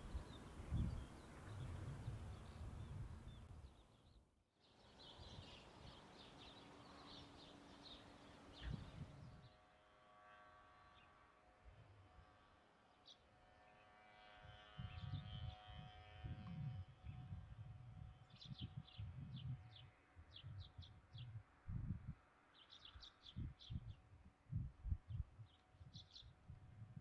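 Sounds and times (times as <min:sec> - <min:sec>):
faint birds chirping: 0:00.0 - 0:09.5.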